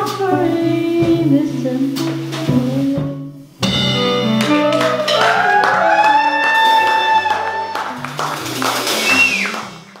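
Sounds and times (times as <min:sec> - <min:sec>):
live jazz band: 0:00.0 - 0:10.0.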